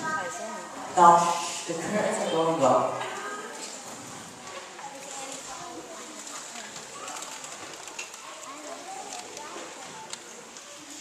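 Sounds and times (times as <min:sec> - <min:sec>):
audience murmuring: 0:00.0 - 0:11.0.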